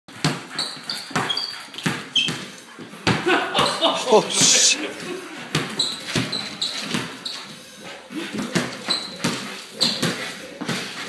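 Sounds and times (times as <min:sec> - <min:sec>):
ball bouncing on hardwood floor: 0:00.1 - 0:03.7, 0:05.5 - 0:07.3, 0:08.3 - 0:10.9
high squeaks: 0:00.5 - 0:02.5.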